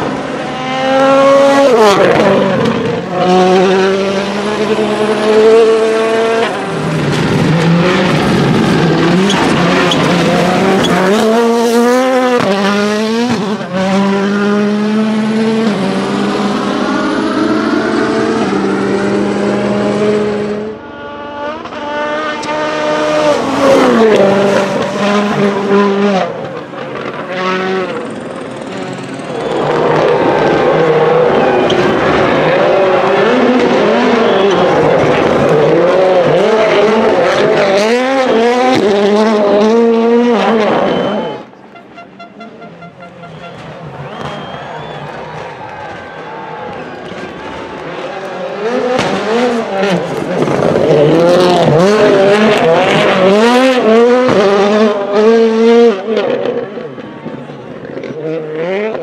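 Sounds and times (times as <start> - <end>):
rally car engine at full throttle: 0.0 - 59.0.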